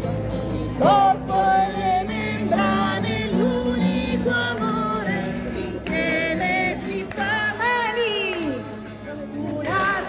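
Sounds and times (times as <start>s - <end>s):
acoustic guitar strummed: 0.0s - 10.0s
woman singing into microphone: 0.8s - 8.6s.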